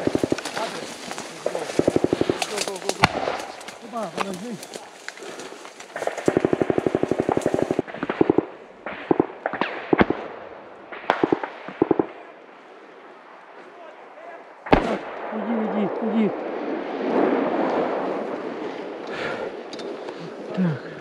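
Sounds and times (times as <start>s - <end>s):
single gunshots: 1.5s - 3.6s, 6.0s - 12.2s, 14.6s - 18.4s
automatic gunfire bursts: 6.0s - 10.2s, 11.0s - 12.1s
loud close gunshot: 14.7s - 15.2s.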